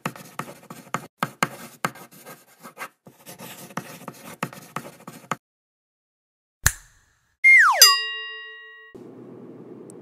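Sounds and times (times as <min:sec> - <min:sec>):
tone sliding downward boing: 0:07.4 - 0:08.4
bell-like ding: 0:07.7 - 0:09.0.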